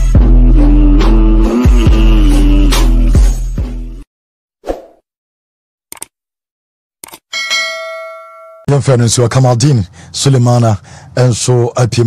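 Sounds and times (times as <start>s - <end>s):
bell chime: 7.3s - 8.7s.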